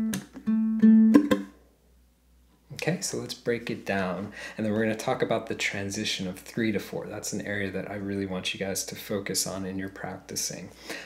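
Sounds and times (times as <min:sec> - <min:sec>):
ukulele blues riff: 0:00.0 - 0:01.6
palm slaps on strings: 0:00.1 - 0:00.5, 0:01.1 - 0:01.5.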